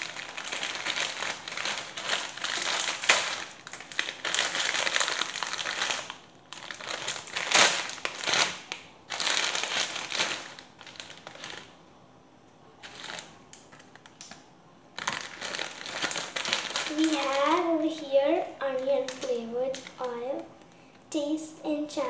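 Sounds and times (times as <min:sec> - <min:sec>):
plastic wrapper crinkling: 0:00.0 - 0:11.8, 0:12.8 - 0:14.4, 0:15.0 - 0:21.0.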